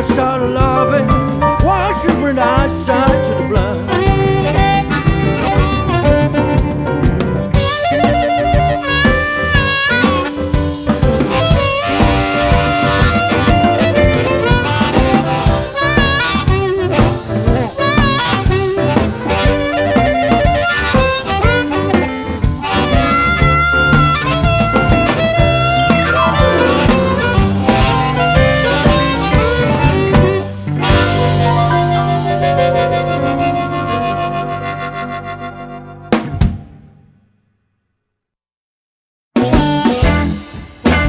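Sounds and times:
electric guitars: 0.0 - 36.7, 39.4 - 41.0
drum kit: 0.0 - 37.1, 39.4 - 41.0
bass: 0.0 - 37.2, 39.4 - 41.0
harmonica: 0.8 - 36.2.

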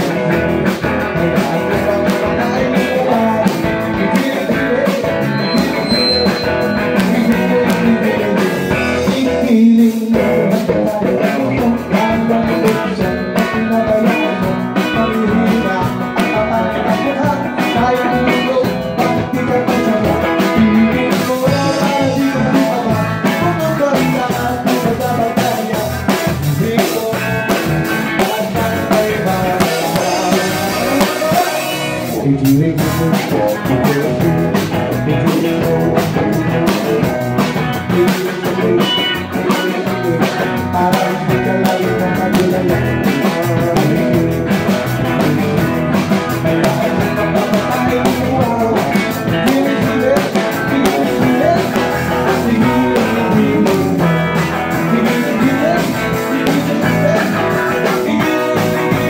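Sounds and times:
bass guitar: 0.0 - 59.0
drum kit: 0.0 - 59.0
electric guitars: 0.0 - 59.0.

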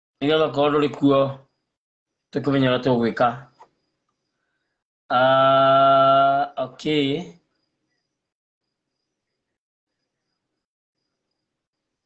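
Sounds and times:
faint cricket chirping: 0.2 - 12.0.

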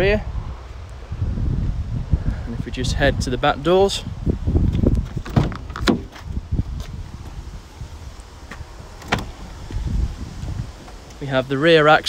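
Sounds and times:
van door latch clicks and knocks: 5.2 - 6.2, 9.0 - 9.5.

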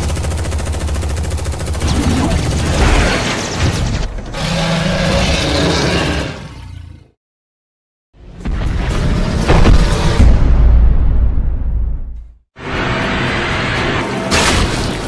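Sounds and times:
rapid gunfire rattle: 0.0 - 2.8.

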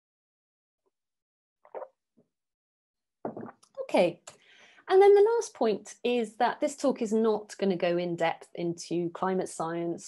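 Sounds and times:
person swallowing water: 3.3 - 3.6.

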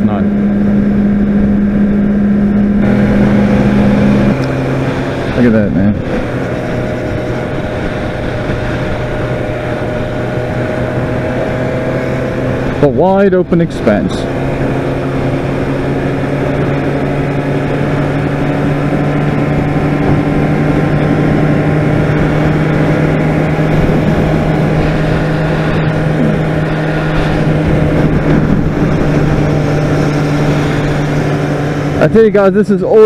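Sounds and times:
motorcycle engine cruising: 0.0 - 33.0
wind rushing over microphone: 0.0 - 33.0.

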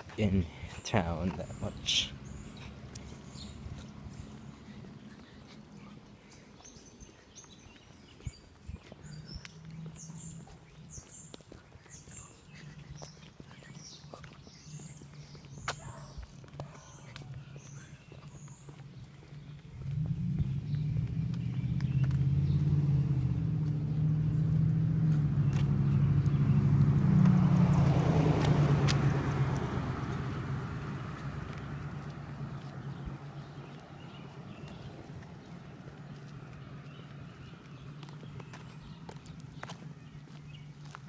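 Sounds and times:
vehicle engine hum: 0.0 - 41.0.

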